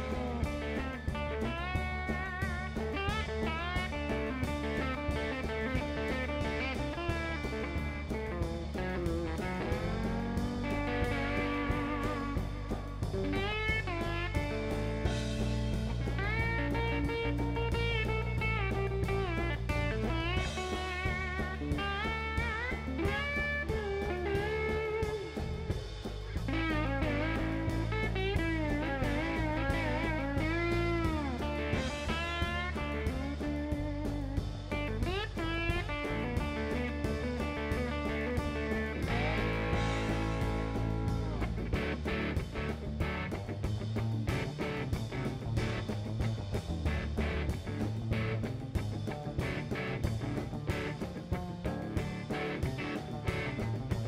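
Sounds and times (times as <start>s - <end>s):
lap steel guitar sliding notes: 0.0s - 25.7s, 26.5s - 42.4s
drum kit: 0.0s - 54.0s
electric bass: 0.0s - 54.0s.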